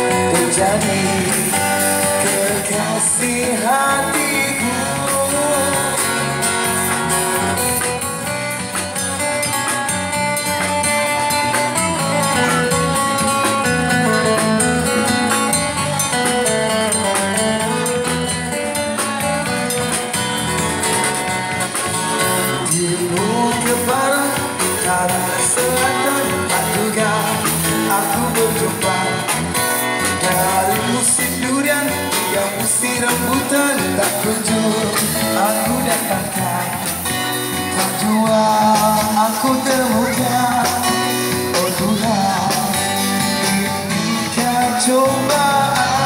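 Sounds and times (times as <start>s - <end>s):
bass guitar: 0.0s - 46.0s
drum kit: 0.0s - 46.0s
electric guitar: 0.0s - 46.0s.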